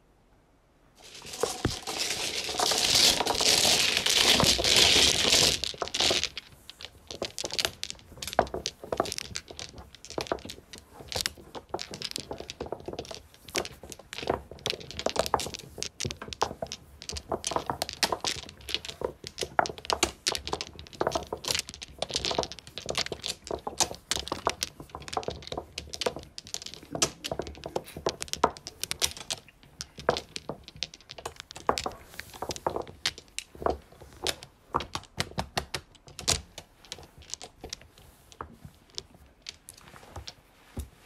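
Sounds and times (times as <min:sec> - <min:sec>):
mahjong tiles clacking: 0:01.0 - 0:40.9.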